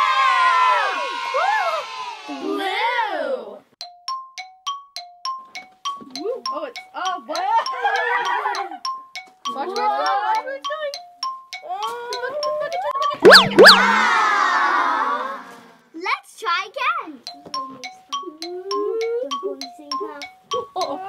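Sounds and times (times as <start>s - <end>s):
children's bell-like music: 3.8s - 14.2s, 17.2s - 21.0s.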